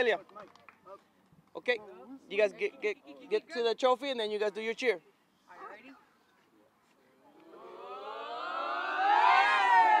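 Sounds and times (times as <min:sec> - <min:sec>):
boys shouting a team cheer: 0:07.4 - 0:10.0.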